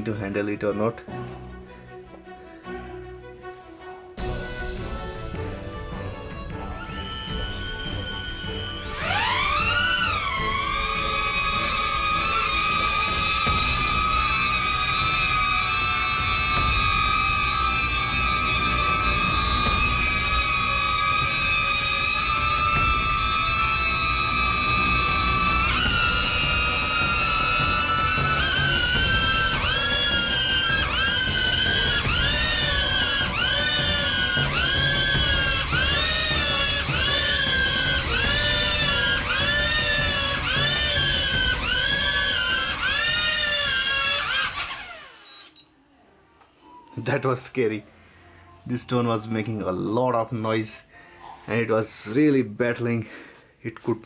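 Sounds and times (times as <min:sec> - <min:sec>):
drone propellers whining: 0:05.0 - 0:45.6.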